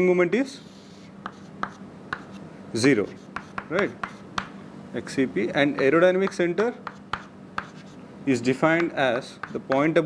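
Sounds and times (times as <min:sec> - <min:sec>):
chalk tapping and scraping: 0:00.6 - 0:04.5, 0:05.6 - 0:08.0, 0:08.6 - 0:10.0.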